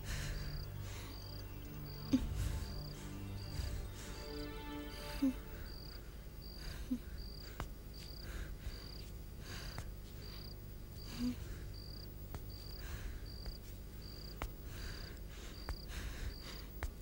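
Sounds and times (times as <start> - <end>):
cricket chirping: 0.0 - 16.6
faint background music: 0.0 - 17.0.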